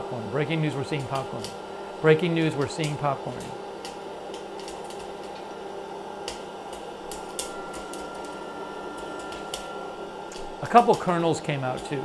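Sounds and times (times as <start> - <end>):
popcorn popper fan blowing: 0.0 - 12.0
popcorn kernels popping: 0.7 - 1.6, 2.2 - 12.0.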